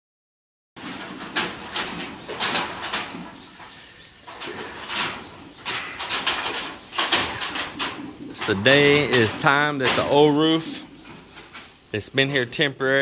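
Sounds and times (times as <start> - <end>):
metal roofing sheets clanking: 0.8 - 13.0
bird calling: 1.9 - 13.0.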